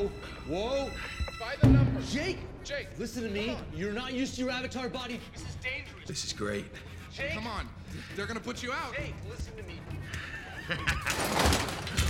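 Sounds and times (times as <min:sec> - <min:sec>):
man laughing: 0:10.1 - 0:11.4.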